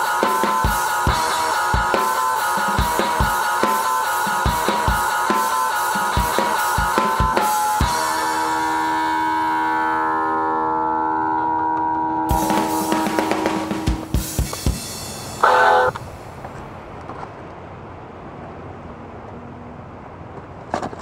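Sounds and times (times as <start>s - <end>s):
synthesized guitar chord: 0.0s - 14.1s, 15.2s - 16.0s
sharp hits: 0.0s - 16.1s.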